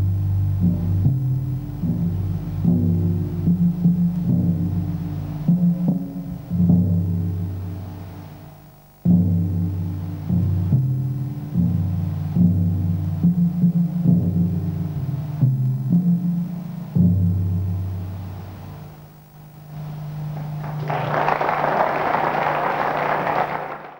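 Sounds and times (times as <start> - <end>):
low bass notes: 0.0 - 8.3
audience applause: 19.8 - 23.9.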